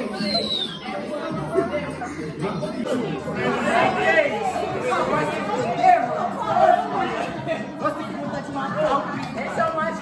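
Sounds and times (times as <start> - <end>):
party chatter: 0.0 - 10.0.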